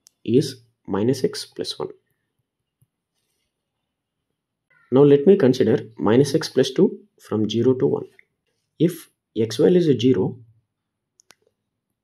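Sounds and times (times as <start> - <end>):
person speaking: 0.0 - 2.2, 4.8 - 10.5.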